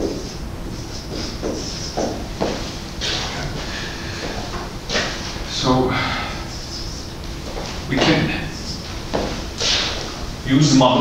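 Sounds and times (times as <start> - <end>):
man speaking: 5.5 - 7.1, 7.9 - 8.9, 10.4 - 11.0.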